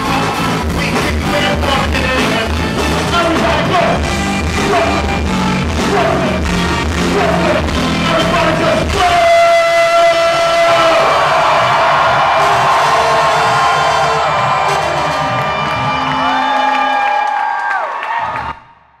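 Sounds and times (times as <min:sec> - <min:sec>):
live hip-hop band playing: 0:00.0 - 0:17.2
crowd cheering and whooping: 0:09.9 - 0:18.7.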